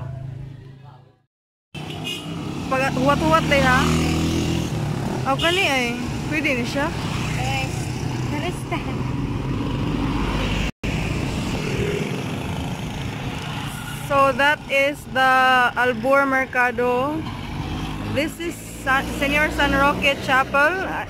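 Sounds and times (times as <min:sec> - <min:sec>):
motorcycles and cars passing: 0:00.0 - 0:01.2, 0:01.8 - 0:21.0.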